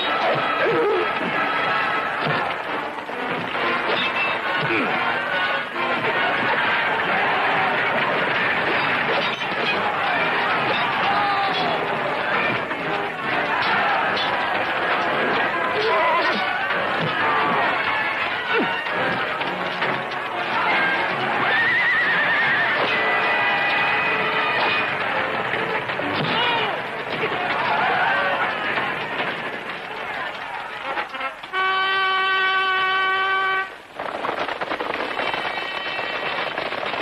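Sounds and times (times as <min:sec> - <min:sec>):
horses galloping: 0:00.0 - 0:32.0, 0:33.9 - 0:37.0.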